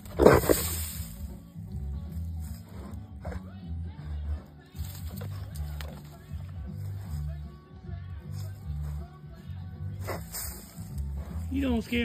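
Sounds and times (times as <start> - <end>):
hog grunting: 0.0 - 0.8, 2.5 - 4.6
background music: 0.0 - 12.0.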